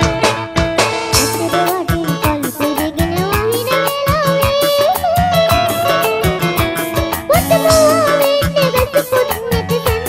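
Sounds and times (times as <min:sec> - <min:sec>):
drums keeping steady beat: 0:00.0 - 0:10.0
live band playing: 0:00.0 - 0:10.0
girl singing into microphone: 0:01.3 - 0:06.3, 0:07.3 - 0:10.0.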